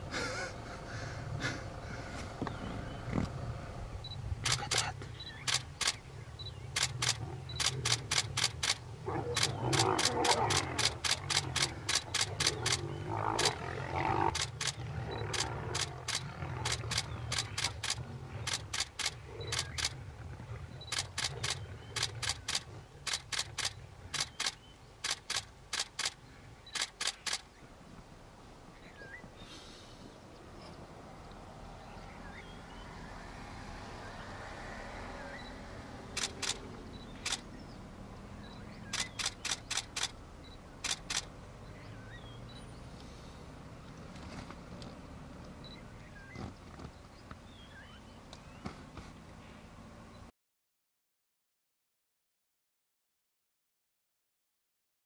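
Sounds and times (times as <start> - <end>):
camera shutter clicking: 4.4 - 6.0, 6.8 - 8.8, 9.4 - 12.8, 14.3 - 19.9, 20.9 - 26.2, 26.8 - 27.4, 36.1 - 37.5, 38.9 - 40.2, 40.8 - 41.3
lions growling: 6.8 - 23.6.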